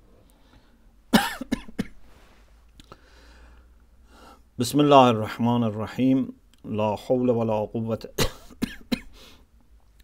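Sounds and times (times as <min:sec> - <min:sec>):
man coughing: 0:01.1 - 0:02.0, 0:08.2 - 0:09.2.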